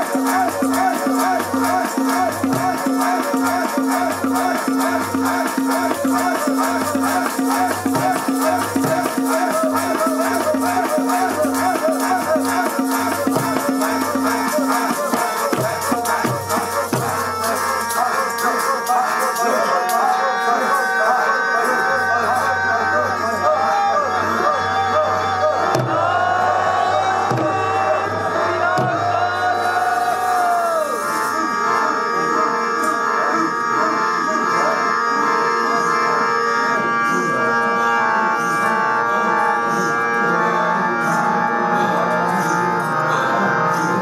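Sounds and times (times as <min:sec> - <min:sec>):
harmonium chords: 0:00.0 - 0:44.0
person singing: 0:00.0 - 0:44.0.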